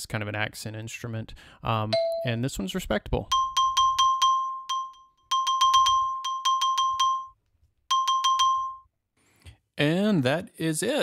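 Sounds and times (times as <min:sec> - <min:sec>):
xylophone repeated notes: 0:02.0 - 0:02.4, 0:03.3 - 0:08.9.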